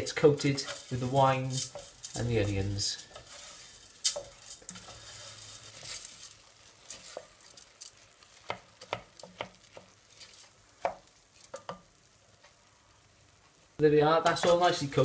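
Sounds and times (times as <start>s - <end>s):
wooden spoon scraping pot: 0.0s - 11.8s
rice sizzling: 0.0s - 15.0s.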